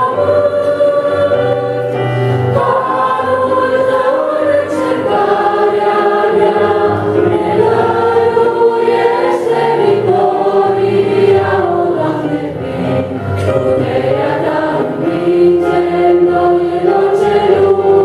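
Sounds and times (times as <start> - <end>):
choir singing hymn in harmony: 0.0 - 18.0
electronic keyboard: 0.0 - 18.0.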